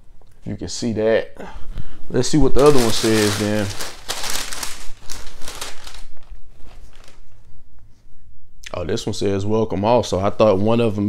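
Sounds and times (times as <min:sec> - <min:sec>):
tissue paper crinkling: 0:02.3 - 0:07.4.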